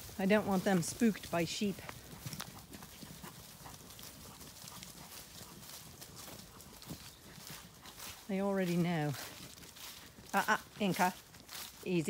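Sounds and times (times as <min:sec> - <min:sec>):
person walking: 0:00.0 - 0:12.0
sheep trotting on grass: 0:00.0 - 0:12.0.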